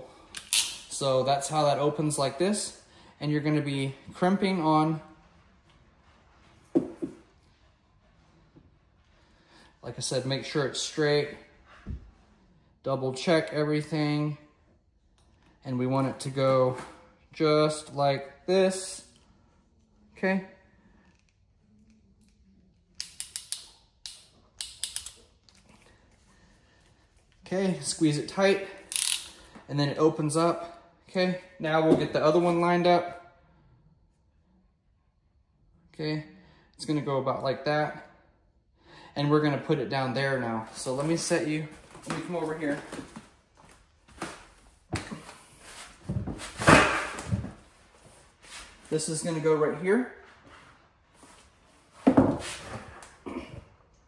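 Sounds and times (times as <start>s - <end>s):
clamp tool clicking: 23.0s - 25.2s, 28.9s - 29.3s.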